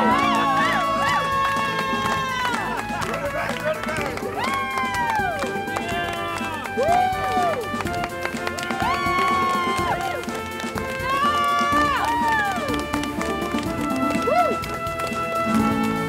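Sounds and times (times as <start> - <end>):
long voiced calls: 0.0 - 3.4
dance music: 0.0 - 16.0.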